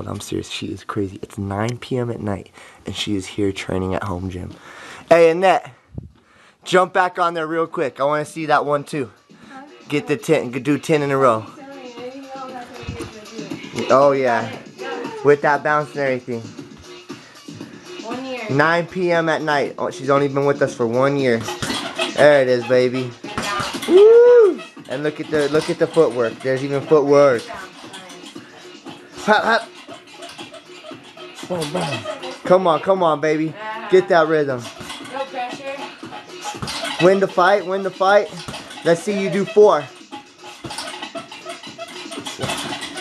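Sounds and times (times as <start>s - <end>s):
background music: 0.0s - 43.0s
person saying ooh: 23.9s - 24.6s.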